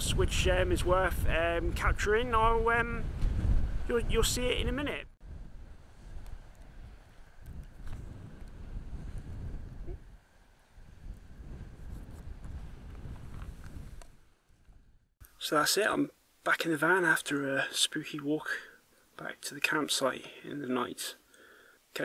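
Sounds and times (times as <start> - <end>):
wind buffeting microphone: 0.0 - 15.1.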